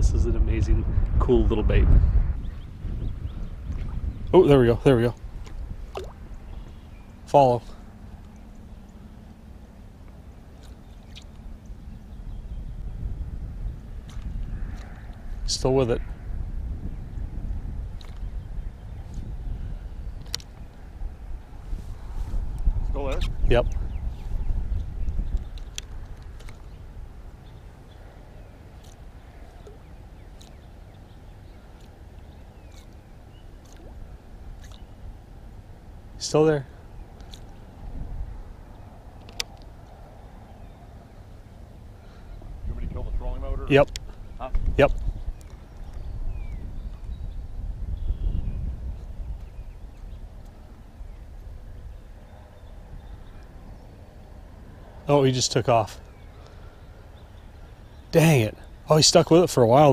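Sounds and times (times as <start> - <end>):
wind rumbling on microphone: 0.0 - 59.9
faint clicks: 38.7 - 40.0.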